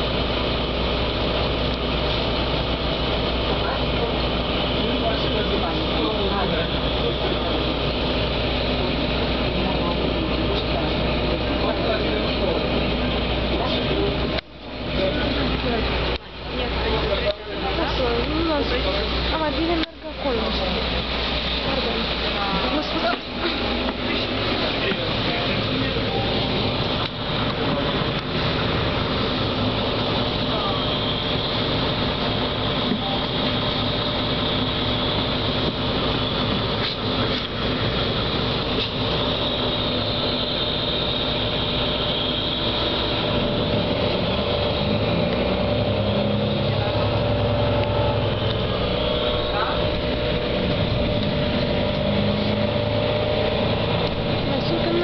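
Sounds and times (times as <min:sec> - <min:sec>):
bus engine: 0:00.0 - 0:55.0
road noise on wet road: 0:00.0 - 0:55.0.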